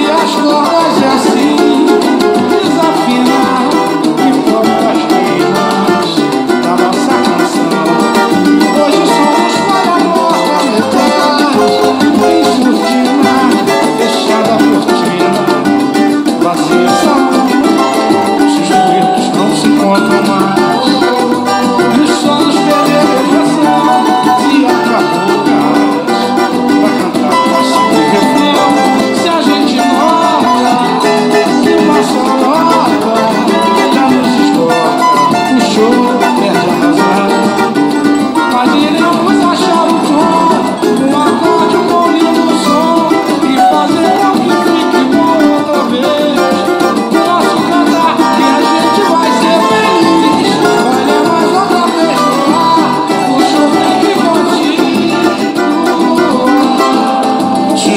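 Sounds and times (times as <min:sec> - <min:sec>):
cavaquinho strummed chords: 0:00.0 - 0:57.9.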